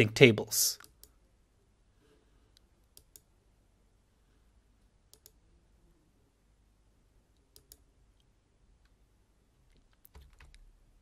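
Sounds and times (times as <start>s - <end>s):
computer mouse clicks: 2.5s - 3.3s, 5.1s - 5.4s, 7.4s - 9.0s, 9.7s - 10.6s.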